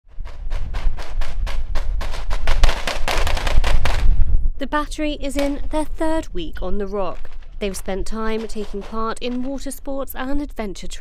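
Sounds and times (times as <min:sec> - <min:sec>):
rifles firing blank rounds: 0:00.5 - 0:04.0.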